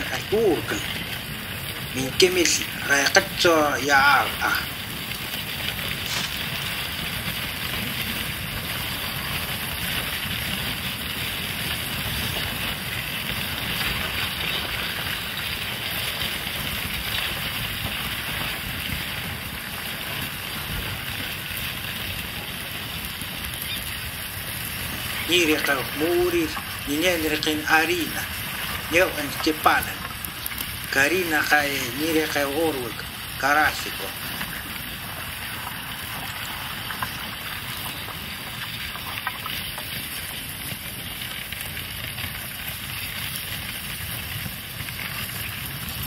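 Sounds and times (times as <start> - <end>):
person's voice: 0.0 - 1.0, 1.9 - 4.8, 25.3 - 30.1, 30.9 - 34.2.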